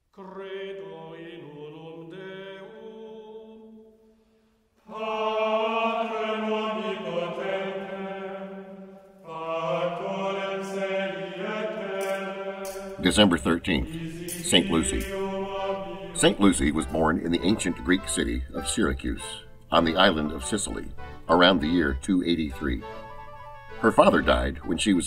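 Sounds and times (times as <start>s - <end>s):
voices chanting long notes: 0.2s - 25.0s.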